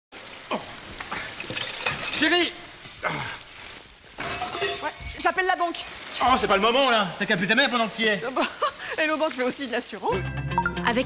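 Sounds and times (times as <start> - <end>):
water spraying from burst pipe: 0.1 - 10.2.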